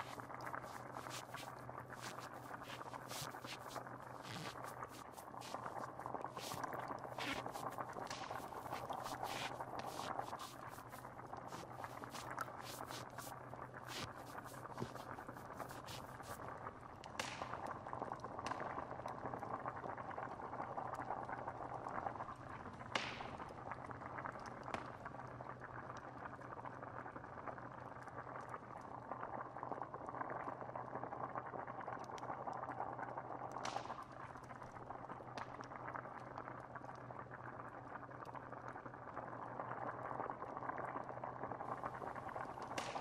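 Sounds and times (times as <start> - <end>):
fire crackling: 0.0 - 16.4
low steady hum: 0.0 - 16.7
stew bubbling: 0.0 - 43.0.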